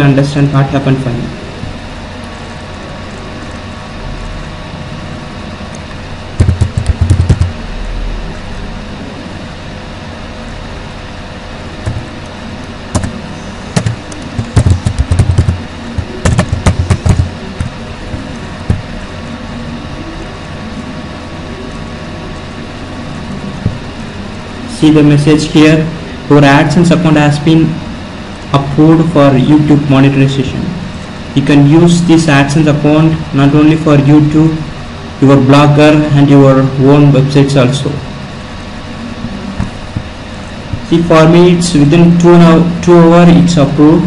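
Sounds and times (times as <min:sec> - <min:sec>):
steady background hum: 0:00.0 - 0:44.0
computer keyboard typing: 0:06.4 - 0:07.5, 0:11.8 - 0:12.1, 0:12.9 - 0:13.2, 0:13.8 - 0:18.9.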